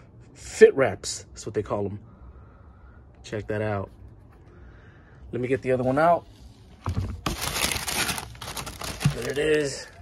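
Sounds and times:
tissue paper crinkling: 6.8 - 10.0.

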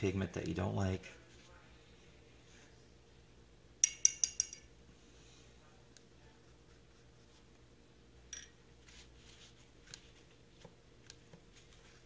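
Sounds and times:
paintbrush clinking against rim: 3.8 - 4.7.

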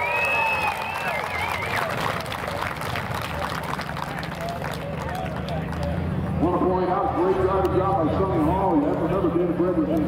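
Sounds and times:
distant people talking: 0.2 - 10.0.

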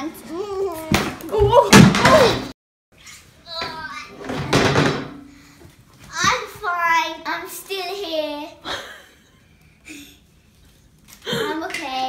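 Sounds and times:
chair crashing onto hardwood floor: 1.0 - 2.5, 4.2 - 5.2.

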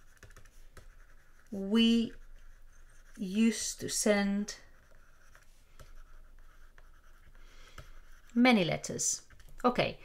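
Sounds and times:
stylus scratching on tablet: 0.0 - 9.8.

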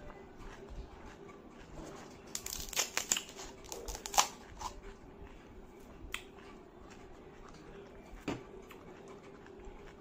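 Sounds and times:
fried shells cracking: 2.3 - 4.8.

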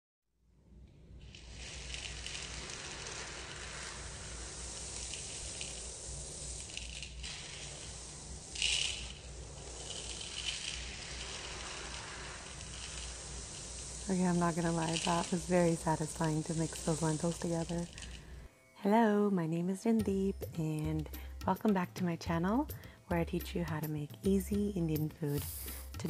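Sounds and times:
grains pouring: 0.9 - 18.5, 24.9 - 26.0
dry lentils rustling in metal bowl: 1.2 - 18.5, 20.4 - 26.0.

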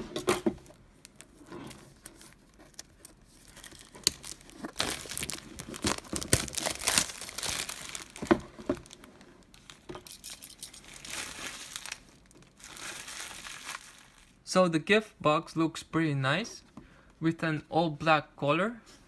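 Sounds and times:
plastic shrink wrap crinkling: 1.0 - 14.4.

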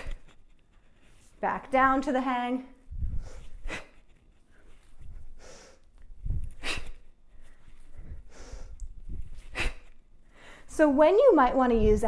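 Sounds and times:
woman breathing and exhaling sharply: 5.0 - 10.7.

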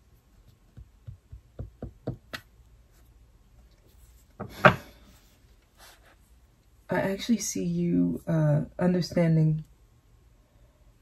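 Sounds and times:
fingers tapping on cloth table: 0.7 - 2.5.

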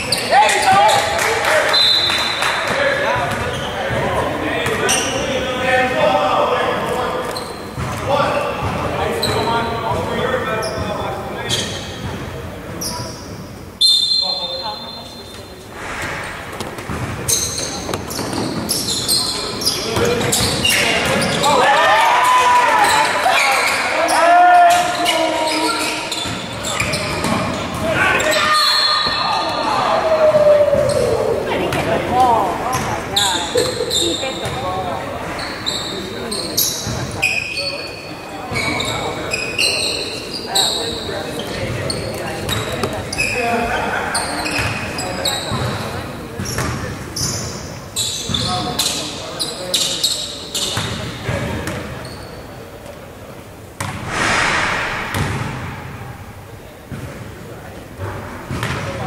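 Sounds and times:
short high squeaks: 35.2 - 41.0
ball bouncing on wooden court: 46.4 - 46.8, 50.8 - 51.9, 53.8 - 54.2, 55.0 - 55.7, 58.5 - 59.0.

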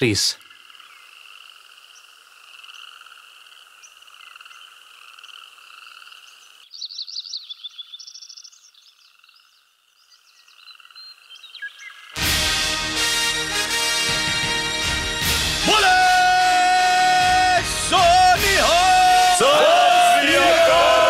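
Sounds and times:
frogs croaking: 0.4 - 12.2.

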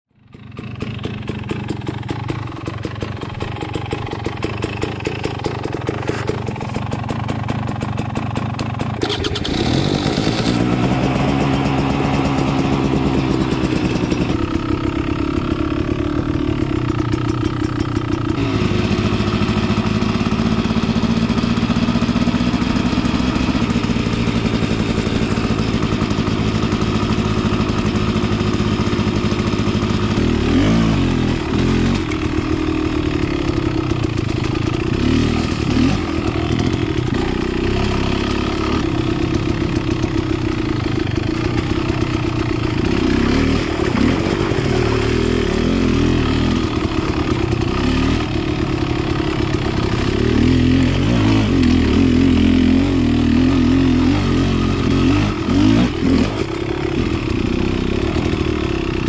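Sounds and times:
dirt bike engine revving: 0.6 - 8.0, 9.0 - 59.0.

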